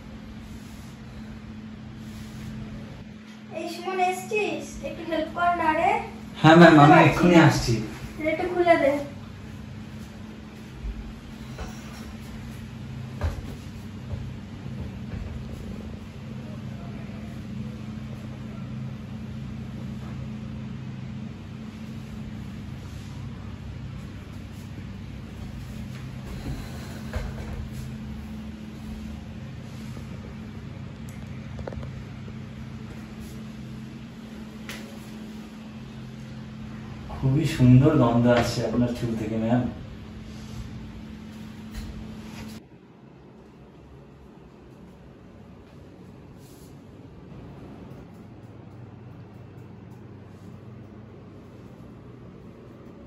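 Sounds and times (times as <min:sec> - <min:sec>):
low electrical hum: 0:00.0 - 0:53.0.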